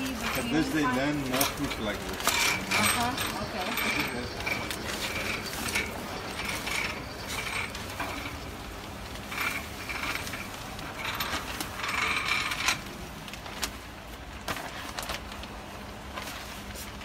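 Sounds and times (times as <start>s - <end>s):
plastic film crinkling: 0.0s - 17.0s.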